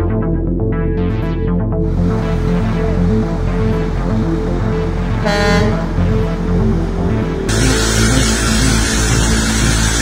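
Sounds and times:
background music: 0.0 - 10.0
vehicle horn honk: 5.2 - 6.0.

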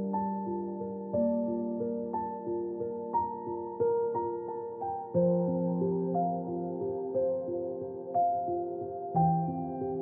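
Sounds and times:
slow calm piano music: 0.0 - 10.0.

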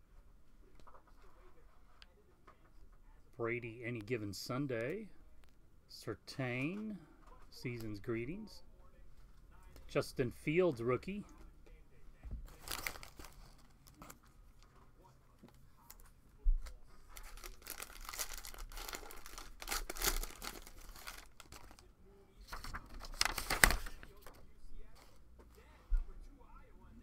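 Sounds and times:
plastic wrapper tearing and crinkling: 12.5 - 14.3, 16.6 - 21.9, 23.0 - 24.2.

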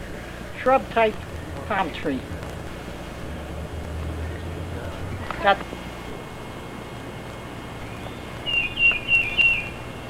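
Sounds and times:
outdoor background noise: 0.0 - 10.0
bird chirping: 7.8 - 10.0.

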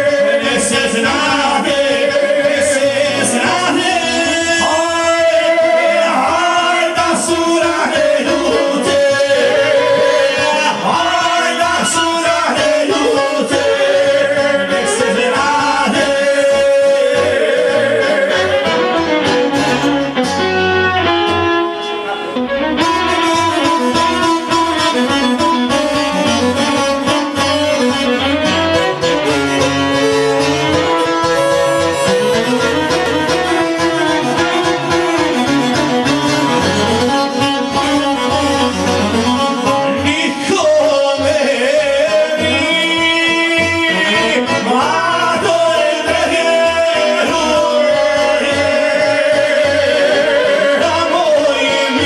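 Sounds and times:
person singing: 0.0 - 21.2, 22.8 - 52.0
keyboard playing a tune: 0.0 - 52.0
saz playing: 0.0 - 52.0.

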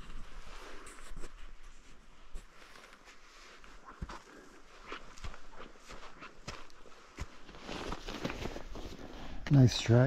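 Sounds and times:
footsteps crunching in snow: 0.0 - 9.4.

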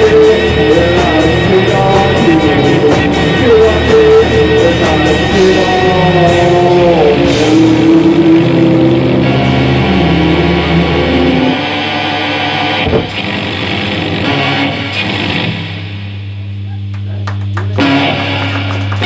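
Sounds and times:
sharp hit: 0.0 - 5.8, 7.4 - 16.3
held bass drone: 0.0 - 19.0
rock band playing loudly: 0.0 - 19.0
scattered guitar noises: 0.0 - 19.0.

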